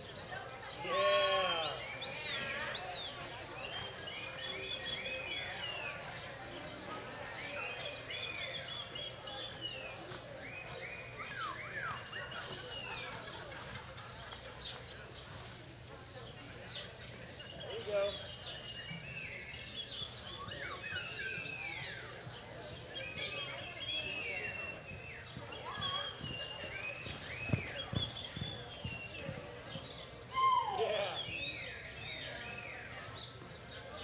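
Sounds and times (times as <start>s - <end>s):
birds chirping: 0.0s - 34.0s
hoofbeats on soft dirt: 20.9s - 30.2s.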